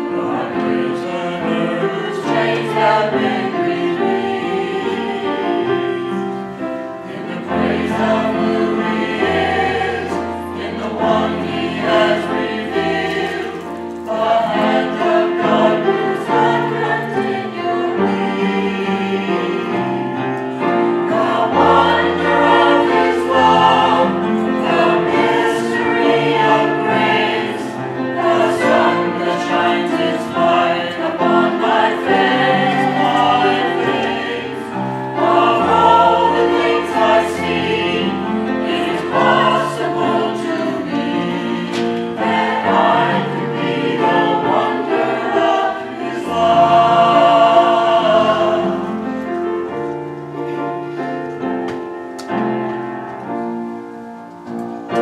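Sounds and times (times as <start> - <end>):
mixed choir singing: 0.0 - 51.2, 54.5 - 55.0
choir accompaniment: 0.0 - 55.0.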